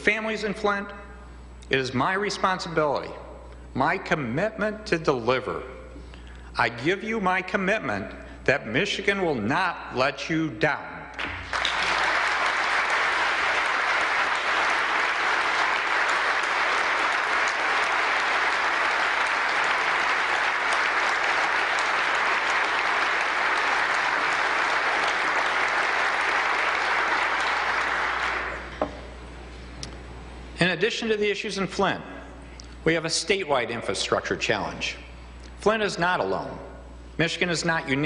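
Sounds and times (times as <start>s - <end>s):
large audience applauding: 11.2s - 28.7s.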